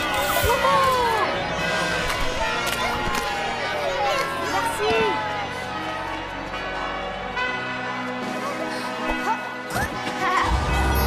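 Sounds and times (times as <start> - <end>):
church bells pealing: 0.0 - 11.0.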